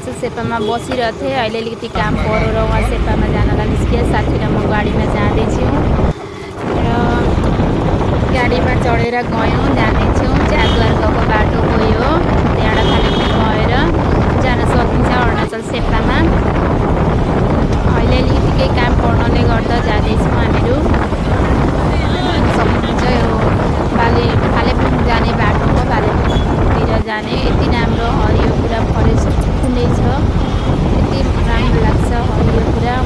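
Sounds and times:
vehicle engine and road noise: 0:00.0 - 0:33.0
wind buffeting microphone: 0:00.0 - 0:33.0.

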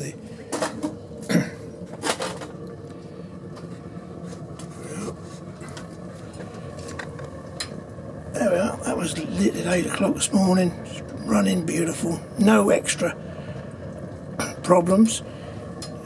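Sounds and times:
stove burning hum and rush: 0:00.0 - 0:16.0.

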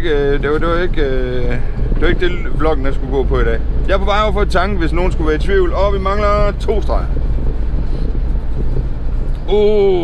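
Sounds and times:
engine and tyre rumble: 0:00.0 - 0:10.0.

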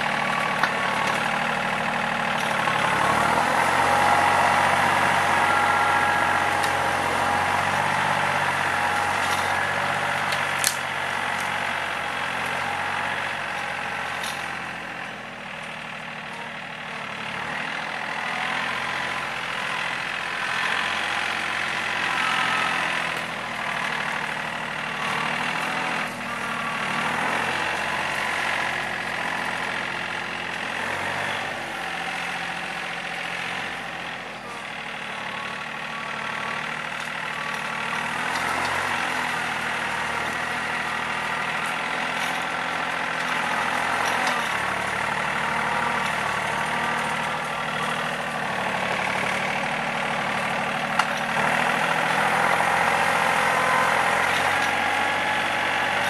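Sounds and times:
tines dragging through grass: 0:00.0 - 0:14.8, 0:36.0 - 0:56.0
tractor diesel engine running: 0:00.0 - 0:56.0.

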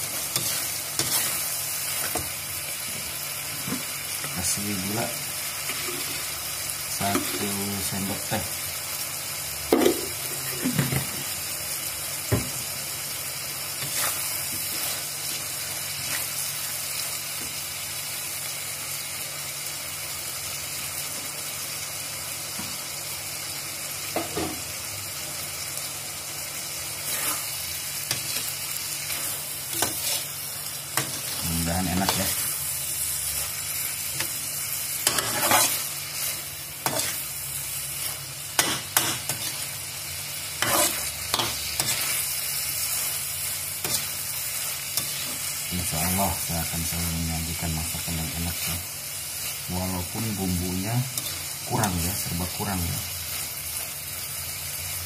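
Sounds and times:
food sizzling in a wok: 0:00.0 - 0:55.0
spatula scraping and knocking pan: 0:35.0 - 0:35.9.

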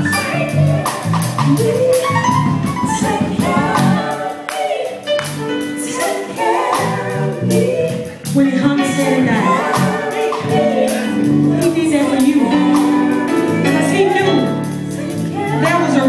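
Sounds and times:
female vocal group singing: 0:00.0 - 0:16.0
live band with drum beat: 0:00.0 - 0:16.0.

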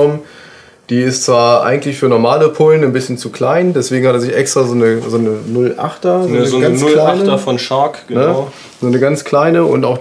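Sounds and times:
man talking: 0:00.0 - 0:00.3, 0:00.9 - 0:10.0.

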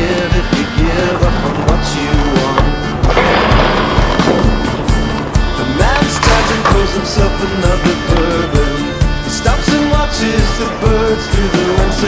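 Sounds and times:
song with singing voice: 0:00.0 - 0:04.6, 0:05.3 - 0:12.0
skateboard rolling: 0:00.0 - 0:09.0.

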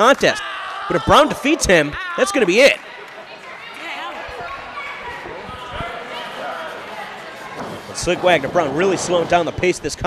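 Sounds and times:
crowd voices: 0:00.0 - 0:10.0.

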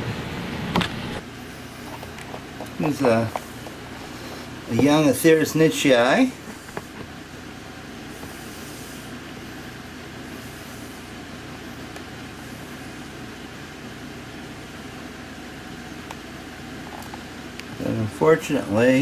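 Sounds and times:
hiss: 0:08.1 - 0:09.2, 0:10.3 - 0:11.2.

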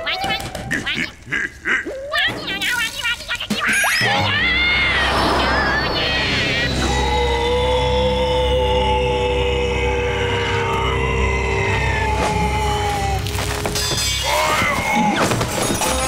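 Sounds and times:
cartoon whoosh: 0:03.9 - 0:07.2.

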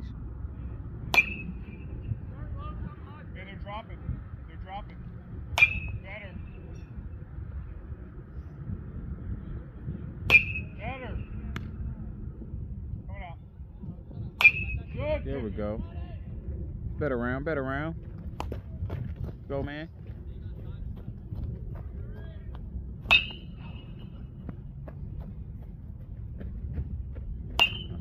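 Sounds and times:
metal bat hitting baseball: 0:01.1 - 0:01.8, 0:05.5 - 0:06.0, 0:10.2 - 0:10.8, 0:14.4 - 0:14.9, 0:23.0 - 0:24.1, 0:27.6 - 0:28.0.

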